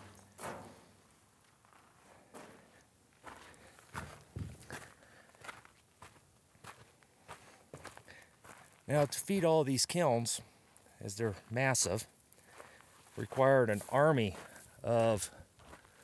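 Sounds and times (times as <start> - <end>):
footsteps on dirt and gravel: 0.0 - 9.6, 10.2 - 16.0.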